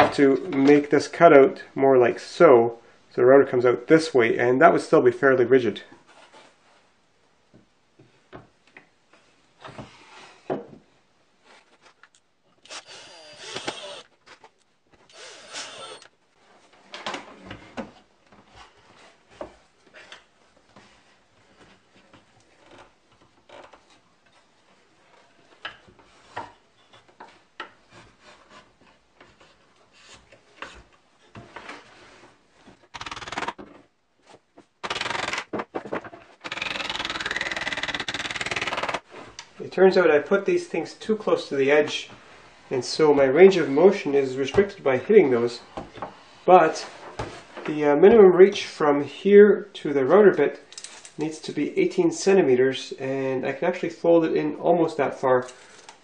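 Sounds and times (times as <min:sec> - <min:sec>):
wood knocking and clattering: 0:35.5 - 0:36.3.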